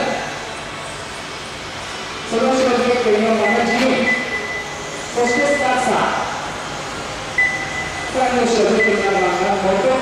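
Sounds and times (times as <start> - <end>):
steady high beep: 3.3 - 5.9, 7.4 - 9.4.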